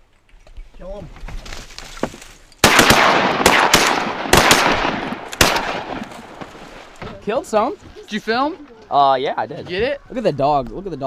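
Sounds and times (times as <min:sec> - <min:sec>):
shotgun blasts: 0:02.6 - 0:06.6.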